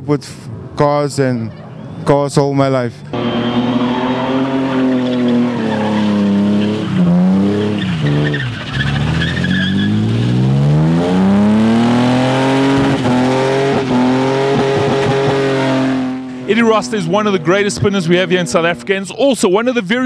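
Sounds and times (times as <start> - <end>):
car engine at high revs: 3.1 - 19.0
tyre squeal: 3.2 - 10.1.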